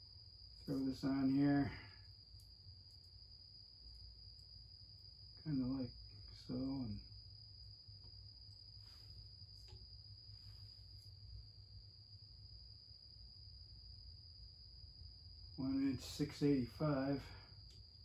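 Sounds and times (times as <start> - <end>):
faint high-pitched whine: 0.0 - 18.0
steady low hum: 0.0 - 18.0.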